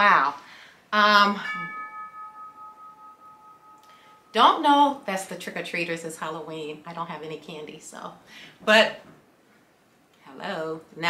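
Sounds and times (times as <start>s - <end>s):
doorbell chime ringing: 1.4s - 4.5s.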